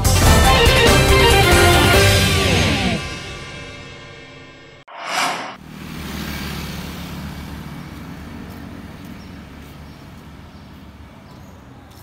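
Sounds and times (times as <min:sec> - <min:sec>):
vehicle engine rumble: 0:05.0 - 0:12.0.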